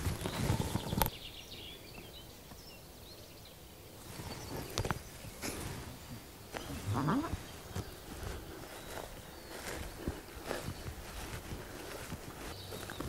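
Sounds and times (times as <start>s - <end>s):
footsteps in leaf litter: 0.0s - 0.9s, 4.0s - 13.0s.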